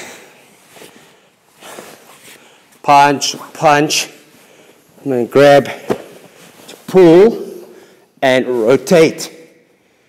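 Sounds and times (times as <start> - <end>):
rustle of cotton uniforms: 0.4 - 2.8
man talking: 2.8 - 4.3, 5.0 - 6.1, 6.7 - 9.5.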